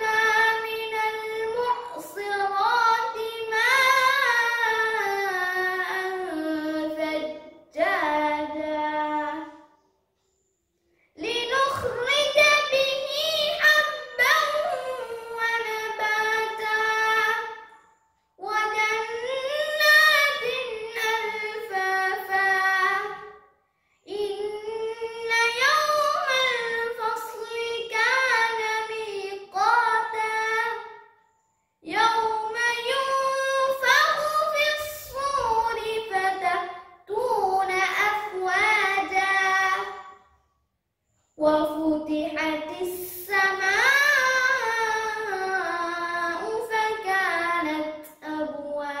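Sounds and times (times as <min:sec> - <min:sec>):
boy reciting melodically: 0:00.0 - 0:09.8, 0:10.4 - 0:40.3, 0:41.3 - 0:49.0.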